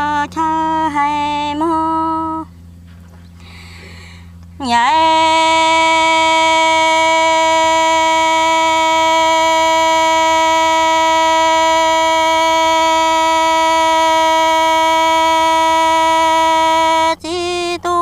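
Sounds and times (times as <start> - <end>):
person singing a long note: 0.0 - 2.5, 4.6 - 18.0.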